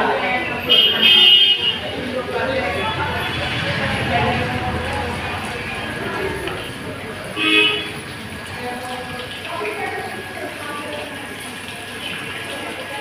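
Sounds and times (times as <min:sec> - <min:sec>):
people talking: 0:00.0 - 0:13.0
loud horn toot: 0:00.6 - 0:08.2.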